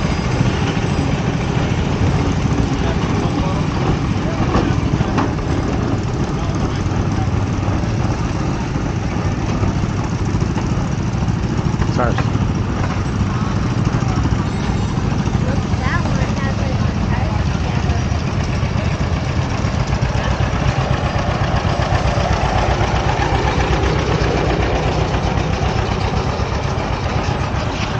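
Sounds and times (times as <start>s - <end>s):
engine running at low speed: 0.0s - 27.9s.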